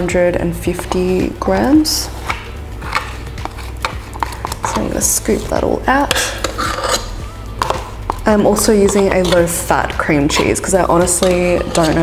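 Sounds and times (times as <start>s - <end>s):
quiet background music: 0.0s - 12.0s
spoon scraping cream cheese tub: 0.6s - 12.0s.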